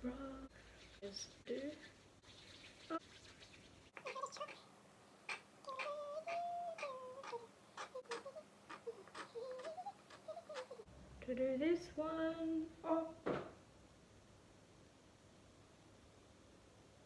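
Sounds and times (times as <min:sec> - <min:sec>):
person humming: 0:05.6 - 0:10.9, 0:12.1 - 0:13.2.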